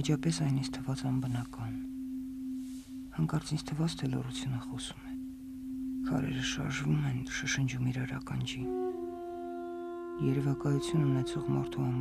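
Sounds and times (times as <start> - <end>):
person speaking: 0.0 - 1.9, 3.1 - 5.2, 6.0 - 8.9
steady low hum: 0.0 - 12.0.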